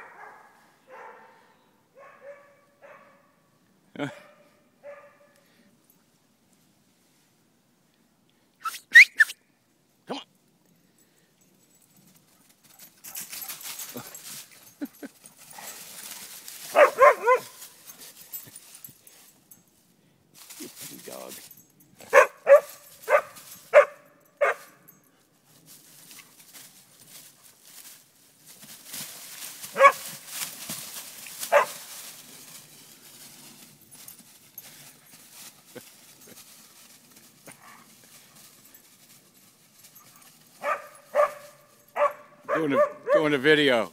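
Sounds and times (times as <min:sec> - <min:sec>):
dogs barking: 0:00.0 - 0:03.4, 0:04.1 - 0:05.4, 0:16.7 - 0:17.6, 0:22.0 - 0:24.8, 0:29.7 - 0:30.1, 0:31.5 - 0:31.8, 0:40.6 - 0:43.3
high sharp yips: 0:08.6 - 0:09.4.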